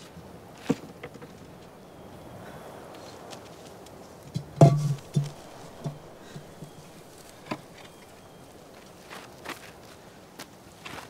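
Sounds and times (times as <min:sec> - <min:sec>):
clay jar knocking on stone: 0:04.4 - 0:06.7.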